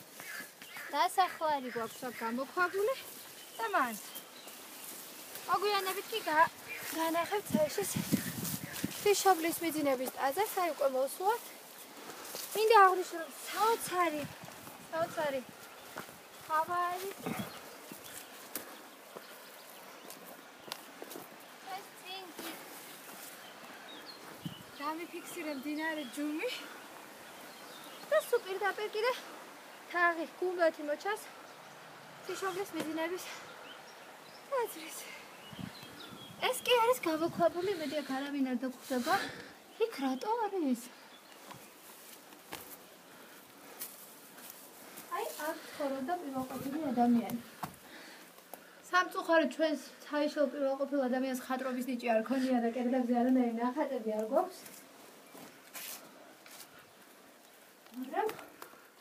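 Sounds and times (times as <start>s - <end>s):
footsteps on forest path: 0.0s - 49.6s, 50.3s - 59.0s
footsteps on gravel and leaves: 2.7s - 24.7s, 54.4s - 56.9s.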